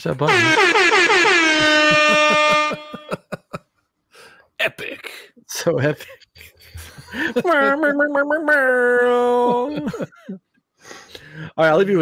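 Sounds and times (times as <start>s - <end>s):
air horn blast: 0.3s - 3.1s.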